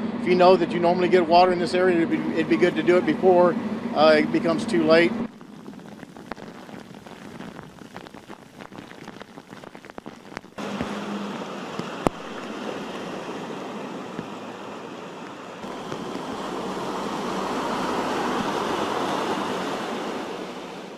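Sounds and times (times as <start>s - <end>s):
low engine rumble: 0.0s - 9.2s, 10.3s - 20.9s
steady rush of water: 1.4s - 20.9s
truck splashing through floodwater: 10.6s - 20.9s.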